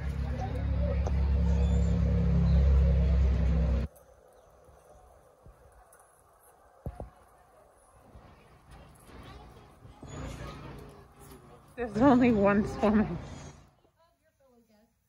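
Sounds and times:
loud low rumble: 0.0s - 3.9s.

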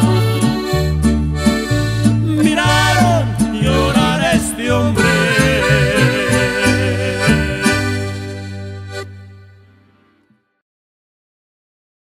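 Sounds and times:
plucked acoustic guitars: 0.0s - 10.2s
accordion melody: 0.0s - 10.4s.

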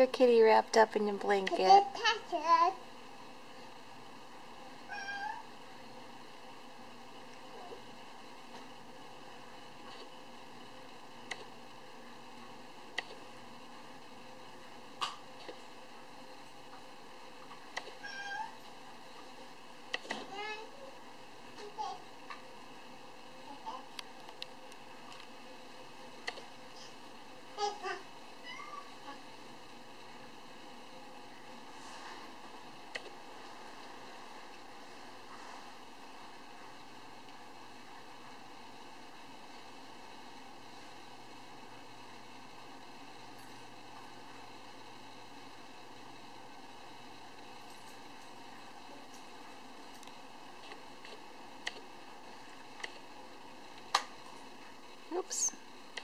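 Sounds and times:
cat meowing: 4.9s - 5.4s, 18.0s - 18.6s
kitten meowing: 4.9s - 5.4s.

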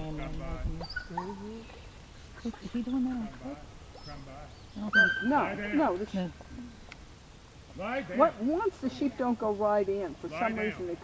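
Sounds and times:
indistinct quiet talking: 0.0s - 7.1s.

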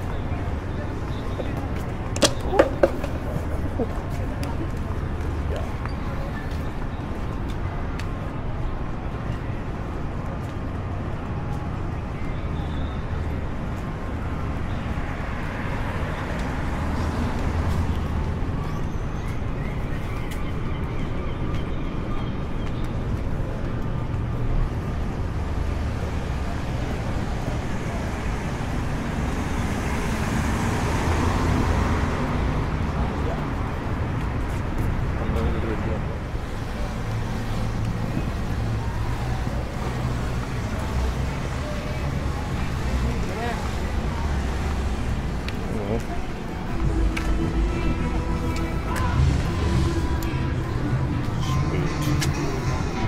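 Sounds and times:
road traffic rumble: 0.0s - 53.0s
vehicle passing: 27.4s - 53.0s.

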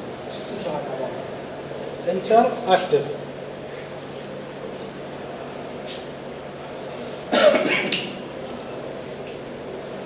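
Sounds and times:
low room hum: 0.0s - 10.0s
person coughing: 7.3s - 8.0s.

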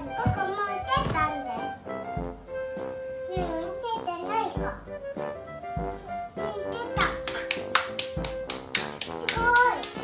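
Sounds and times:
background music with held note: 0.0s - 10.0s
child clapping hands quickly: 7.0s - 10.0s.

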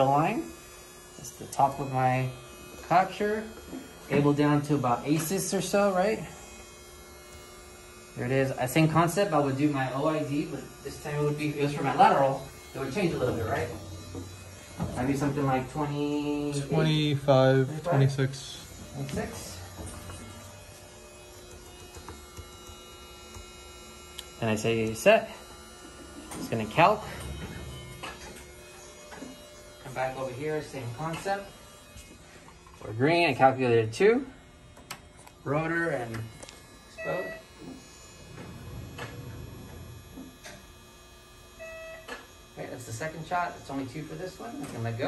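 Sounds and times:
low electrical hum: 0.0s - 45.0s
person speaking: 14.9s - 19.7s.

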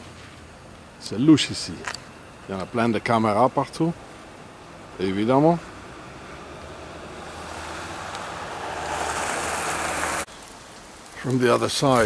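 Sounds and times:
outdoor background: 0.0s - 12.0s
rushing hissing noise: 3.9s - 12.0s.

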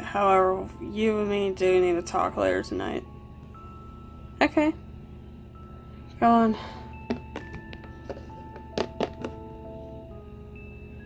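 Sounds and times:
soft background music: 0.0s - 11.0s
plastic figures tapping on surface: 7.1s - 9.4s.

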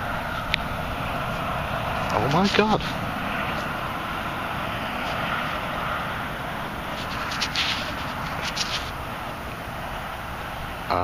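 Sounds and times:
wind noise on microphone: 0.0s - 11.0s
gloved hand rustling: 6.9s - 9.0s.

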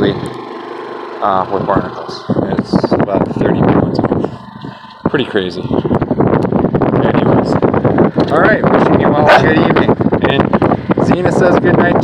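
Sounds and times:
wind blowing across microphone: 1.4s - 12.0s.

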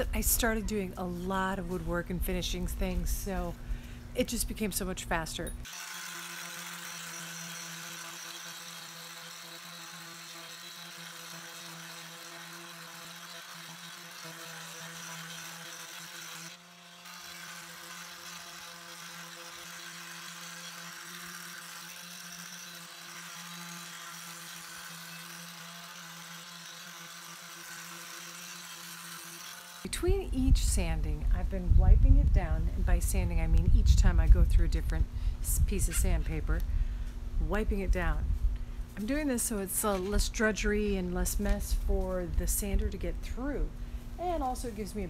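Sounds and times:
electric sander whirring: 5.6s - 30.0s
sandpaper rasping on wood: 5.7s - 29.9s.

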